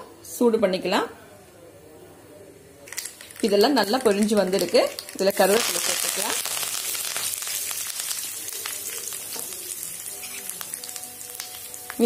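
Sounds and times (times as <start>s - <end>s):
hot oil sizzling: 2.9s - 12.0s.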